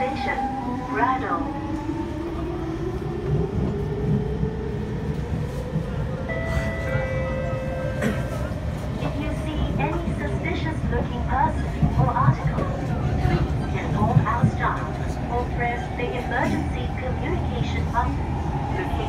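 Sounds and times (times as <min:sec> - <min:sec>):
wheels rumbling on track: 0:00.0 - 0:19.0.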